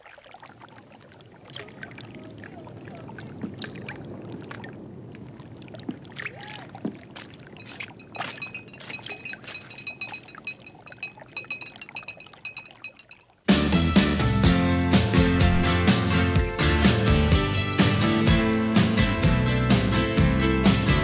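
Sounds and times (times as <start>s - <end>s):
faint high steady ringing: 7.6s - 13.4s.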